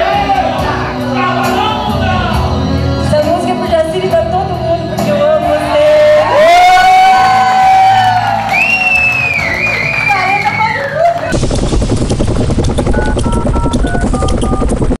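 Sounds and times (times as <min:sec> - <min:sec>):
woman singing: 0:02.7 - 0:06.4
audience cheering and clapping: 0:05.7 - 0:11.4
electronic jingle: 0:11.4 - 0:15.0.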